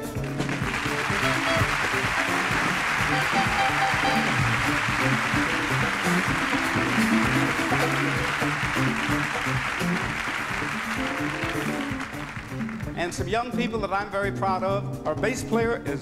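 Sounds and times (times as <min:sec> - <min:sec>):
audience applauding: 0:00.0 - 0:13.3
live band playing groove: 0:00.0 - 0:16.0.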